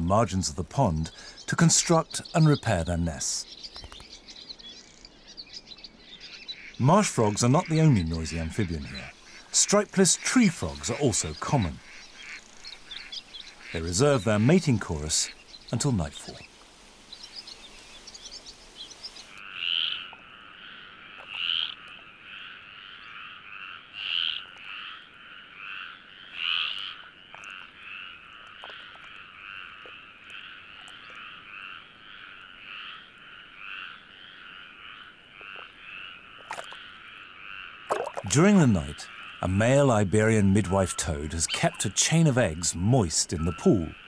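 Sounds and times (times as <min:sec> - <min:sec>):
tree frogs croaking: 0:00.0 - 0:44.0.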